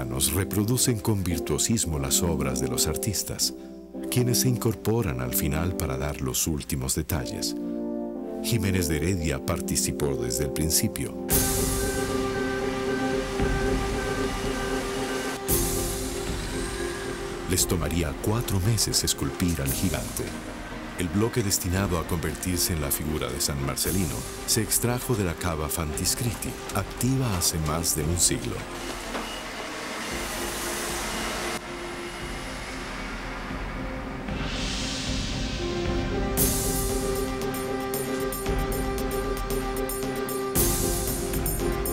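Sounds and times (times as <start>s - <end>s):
background music with low held tones: 0.0s - 41.9s
diesel wheel loader engine running: 11.3s - 35.5s.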